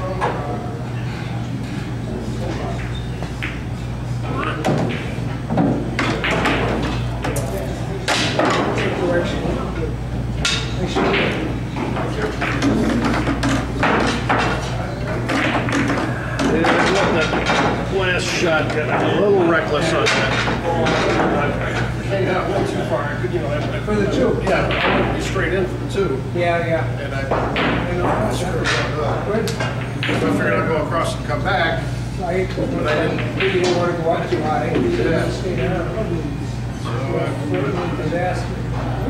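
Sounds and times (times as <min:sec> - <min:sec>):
electrical hum: 0:00.0 - 0:39.0
murmur of voices: 0:00.0 - 0:39.0.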